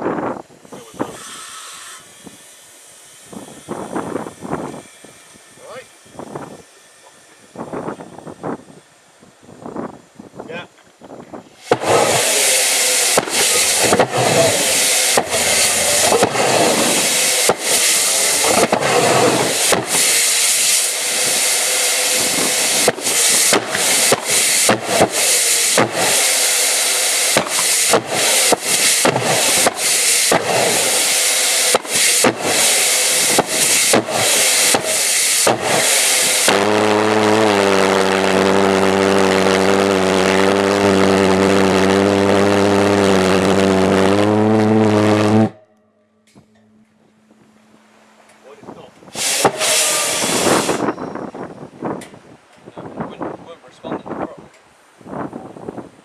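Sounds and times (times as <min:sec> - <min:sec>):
pulsejet engine roaring: 0:11.5 - 0:51.4.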